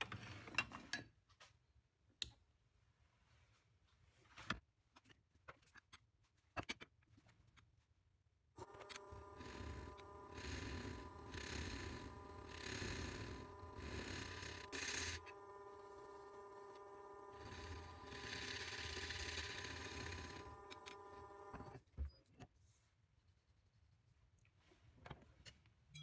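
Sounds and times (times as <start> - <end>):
wood lathe motor hum: 8.6 - 21.8.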